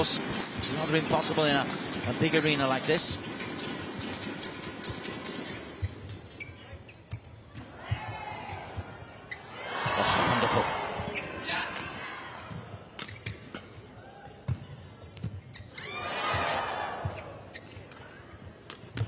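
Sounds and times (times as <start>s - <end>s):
crowd noise: 6.7s - 19.0s.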